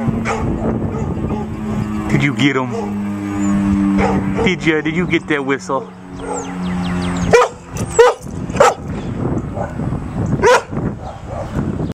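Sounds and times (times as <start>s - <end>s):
dog barking: 0.2s - 1.5s, 4.0s - 4.6s, 5.8s - 6.5s, 7.3s - 8.9s, 9.5s - 9.8s, 10.4s - 11.6s.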